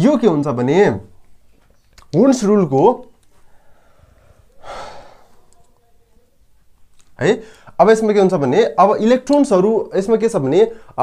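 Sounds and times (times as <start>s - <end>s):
man sighing: 4.6s - 5.4s.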